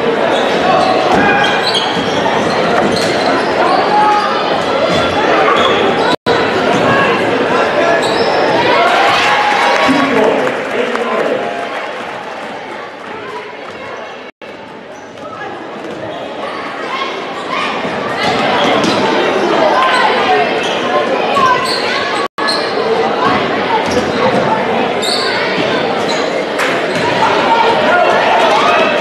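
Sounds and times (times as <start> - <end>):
crowd chatter and shouts: 0.0 - 29.0.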